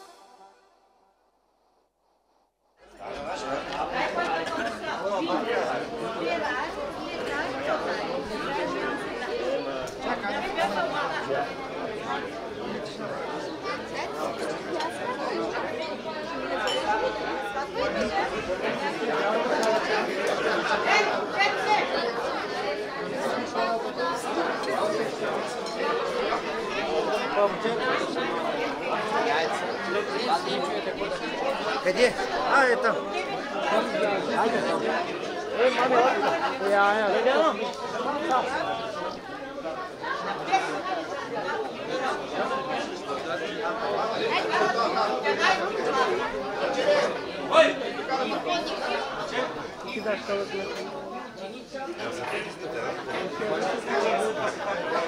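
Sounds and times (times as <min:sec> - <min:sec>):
crowd chatter: 0:00.0 - 0:00.9, 0:02.8 - 0:55.0.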